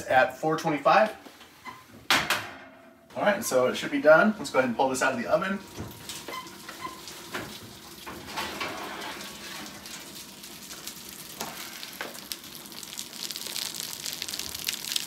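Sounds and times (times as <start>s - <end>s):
pastry sizzling and crackling: 6.0s - 15.0s.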